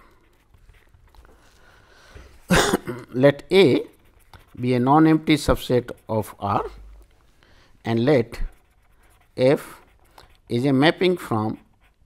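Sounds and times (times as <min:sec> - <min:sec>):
man coughing: 0:02.5 - 0:03.2.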